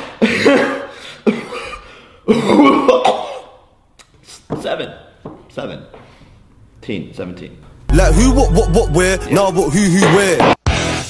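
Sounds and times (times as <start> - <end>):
person coughing: 0.2 - 3.6.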